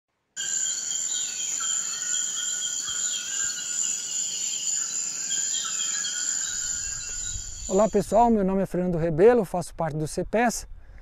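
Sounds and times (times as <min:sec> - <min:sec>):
bird descending whistle: 0:00.4 - 0:08.0
high-pitched insect drone: 0:00.4 - 0:08.2.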